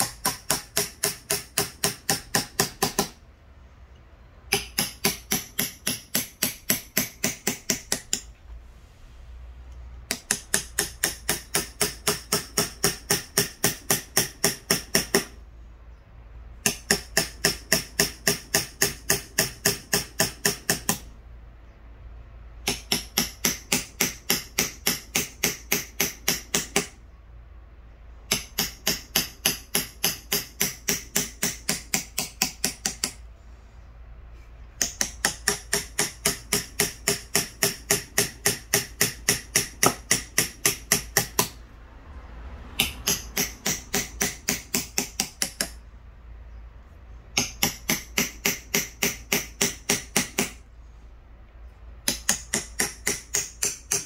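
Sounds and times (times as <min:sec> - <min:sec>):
hammer tapping knife into wood: 0:00.0 - 0:03.2, 0:04.5 - 0:08.3, 0:10.1 - 0:15.4, 0:16.6 - 0:21.0, 0:22.6 - 0:27.0, 0:28.3 - 0:33.2, 0:34.8 - 0:41.6, 0:42.8 - 0:45.8, 0:47.3 - 0:50.6, 0:52.0 - 0:54.0.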